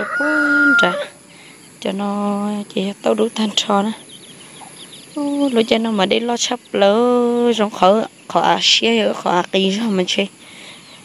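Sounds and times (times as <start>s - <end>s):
voice making long calls: 0.0s - 1.8s.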